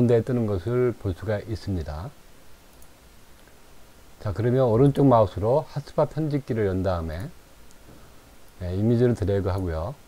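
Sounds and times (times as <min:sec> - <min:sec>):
low room hiss: 0:00.0 - 0:10.0
faint computer mouse clicks: 0:02.7 - 0:03.6.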